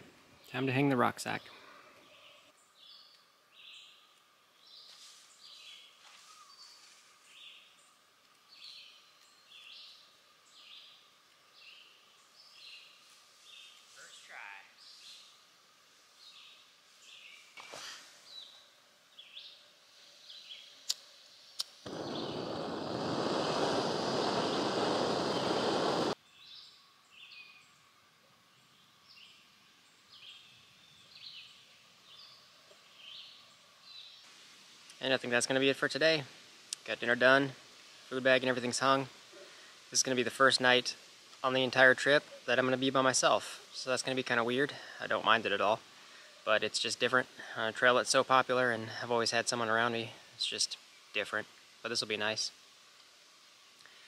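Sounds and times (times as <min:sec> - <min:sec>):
stove burner hissing: 0:21.6 - 0:26.2.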